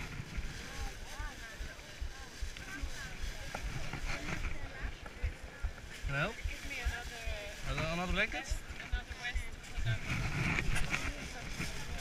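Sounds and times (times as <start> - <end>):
low wind rumble: 0.0 - 12.0
rustling handling noise: 0.0 - 12.0.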